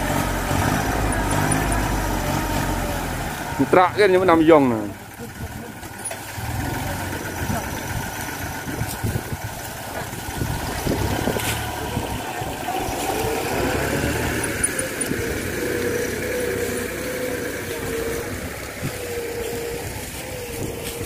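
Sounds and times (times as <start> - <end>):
tractor diesel engine running: 0.0 - 21.0
wavering whine: 10.4 - 21.0.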